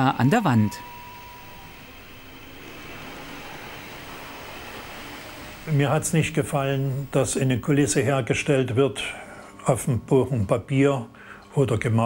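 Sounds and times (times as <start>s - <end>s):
model train rolling hum: 0.0s - 9.1s.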